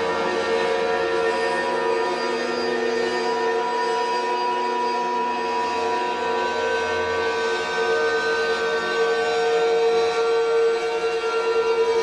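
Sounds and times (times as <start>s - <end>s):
ambient guitar drone: 0.0s - 12.0s.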